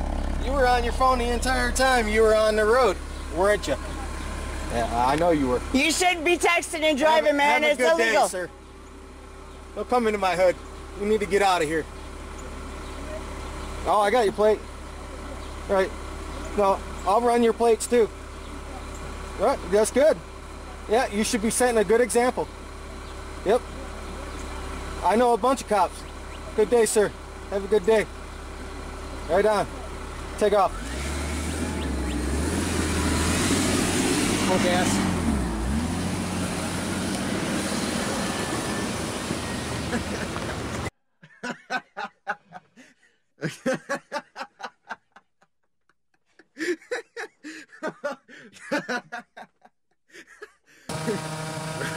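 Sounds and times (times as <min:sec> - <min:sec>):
car engine idling: 0:00.0 - 0:40.9, 0:50.9 - 0:51.9
road and wind noise: 0:00.0 - 0:40.9.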